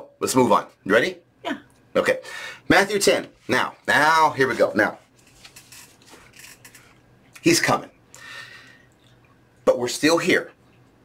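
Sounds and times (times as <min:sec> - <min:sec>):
faint rustling and handling: 0:02.9 - 0:07.1.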